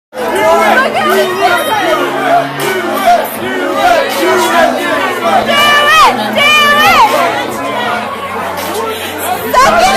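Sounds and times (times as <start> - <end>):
people talking over one another: 0.1 - 9.9.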